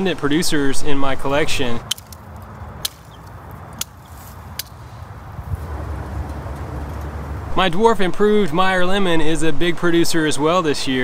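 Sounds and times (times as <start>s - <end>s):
pruning shears snipping: 1.8s - 7.4s
low steady rumble: 2.4s - 8.5s.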